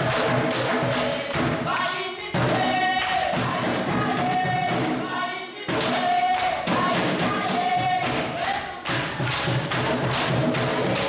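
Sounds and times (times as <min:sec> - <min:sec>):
group singing in chorus: 0:00.0 - 0:11.0.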